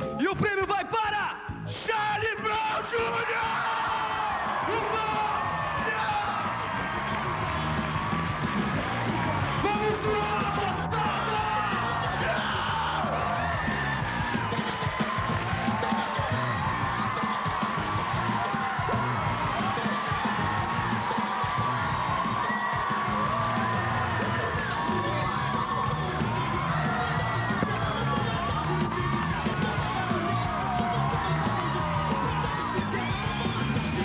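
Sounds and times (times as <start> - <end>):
music playing: 0.0 - 34.0
audience cheering and whooping: 2.7 - 34.0.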